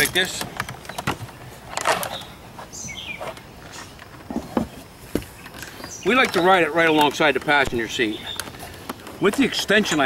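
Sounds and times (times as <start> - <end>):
bird chirp: 2.0 - 4.0, 5.3 - 8.7.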